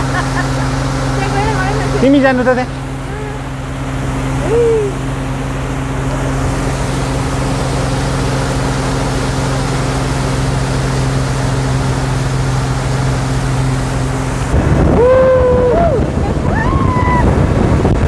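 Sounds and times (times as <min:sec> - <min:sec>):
churning wake rushing: 0:00.0 - 0:18.0
motorboat engine droning: 0:00.0 - 0:18.0.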